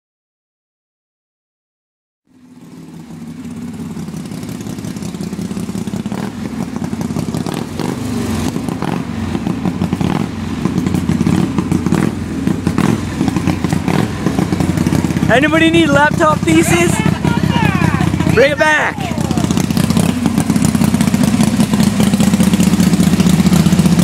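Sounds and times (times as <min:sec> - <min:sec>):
motorcycle engine running: 0:02.3 - 0:24.0.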